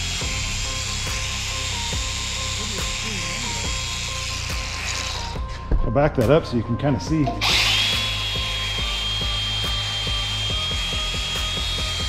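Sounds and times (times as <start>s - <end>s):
belt sander whining on metal: 0.0s - 5.5s, 7.4s - 12.0s.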